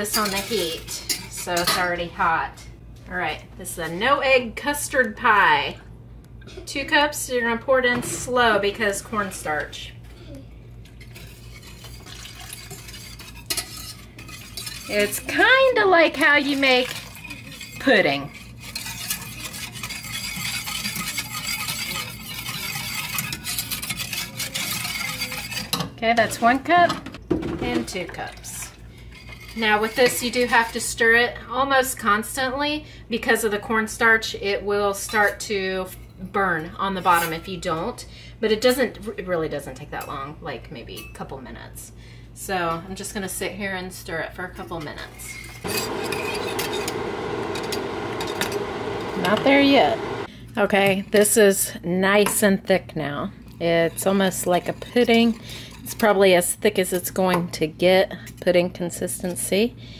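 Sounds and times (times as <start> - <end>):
whisk scraping a metal pan: 11.0 - 25.8, 45.1 - 50.3
wire whisk clinking against pan: 16.8 - 25.7.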